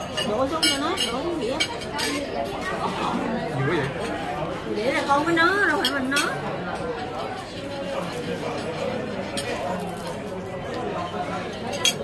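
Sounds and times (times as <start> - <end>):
tableware clink: 0.0 - 2.2, 11.6 - 12.0
diners chattering: 0.0 - 12.0.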